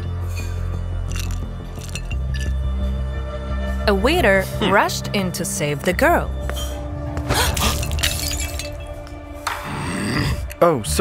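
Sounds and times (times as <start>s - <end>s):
background music: 0.0s - 11.0s
glass shattering: 1.1s - 2.5s, 7.3s - 9.0s.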